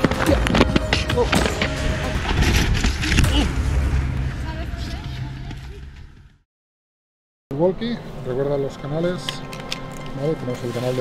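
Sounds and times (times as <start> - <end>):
low outdoor rumble: 1.7 - 6.4.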